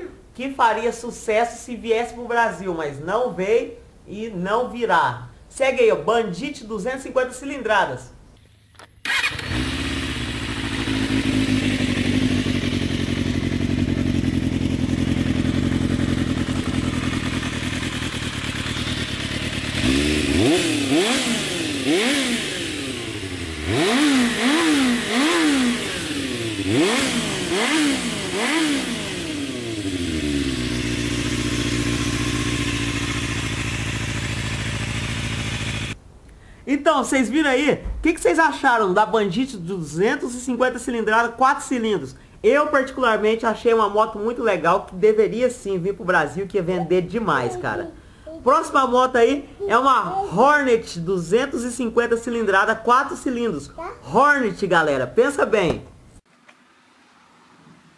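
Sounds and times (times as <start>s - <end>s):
motorcycle engine idling and revving: 9.1s - 36.0s.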